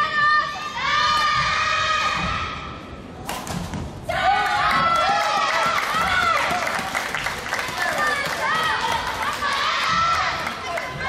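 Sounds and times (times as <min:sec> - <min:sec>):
girls shouting in echoing hall: 0:00.0 - 0:02.8, 0:04.1 - 0:06.8, 0:07.7 - 0:11.0.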